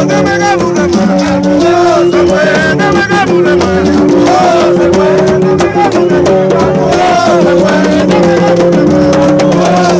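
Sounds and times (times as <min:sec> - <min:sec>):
sharp percussion strikes: 0:00.0 - 0:09.9
wavering singing voices: 0:00.0 - 0:09.9.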